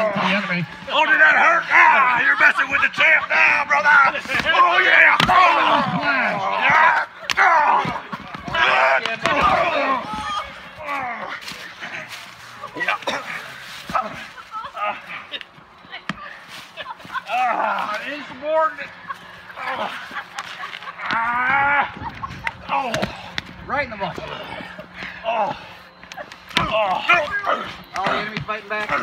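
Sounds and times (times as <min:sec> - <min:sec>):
voices shouting and yelling: 0:00.0 - 0:29.0.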